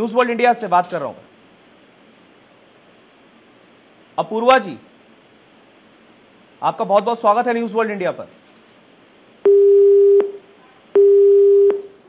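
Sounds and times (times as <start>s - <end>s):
telephone busy tone beeps: 9.4s - 12.0s.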